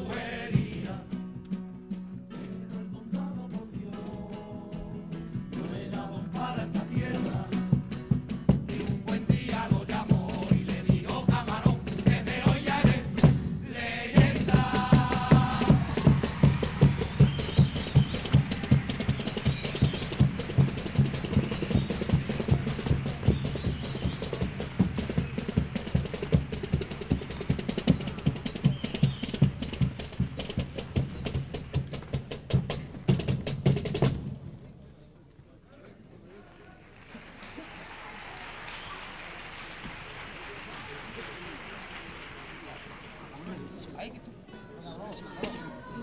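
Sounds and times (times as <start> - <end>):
snare drum beating: 7.0 - 13.4, 14.1 - 34.3
bass drum beating: 14.2 - 34.2.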